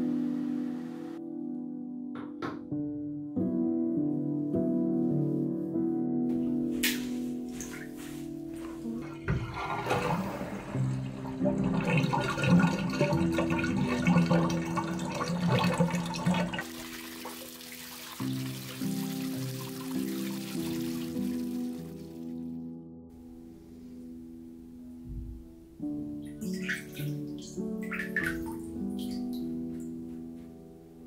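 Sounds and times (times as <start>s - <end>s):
background music: 0.0s - 31.0s
water running into bathtub: 6.9s - 22.4s, 26.3s - 29.6s.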